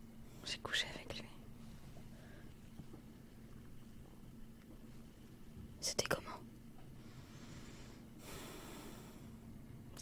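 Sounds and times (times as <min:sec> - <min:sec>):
soft nasal exhale: 0:07.0 - 0:09.4.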